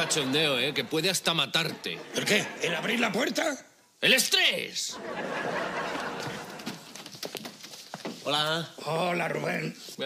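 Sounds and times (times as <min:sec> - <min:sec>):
audience laughing: 0:00.0 - 0:03.2, 0:04.9 - 0:06.9.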